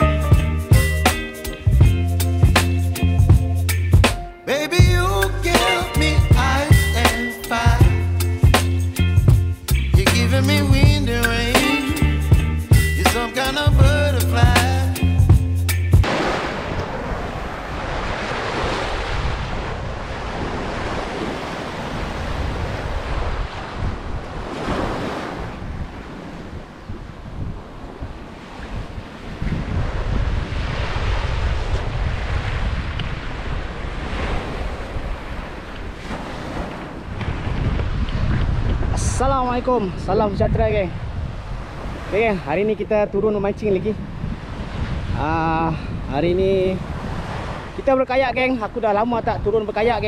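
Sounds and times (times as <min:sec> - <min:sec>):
small waves washing onto sand: 0:16.0 - 0:43.2, 0:44.0 - 0:49.0
wind buffeting microphone: 0:16.0 - 0:50.0.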